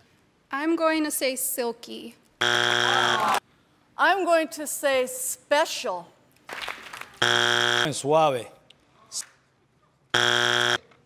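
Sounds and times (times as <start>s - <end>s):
wrong-answer buzzer: 2.4s - 3.4s, 7.2s - 8.0s, 10.2s - 10.8s.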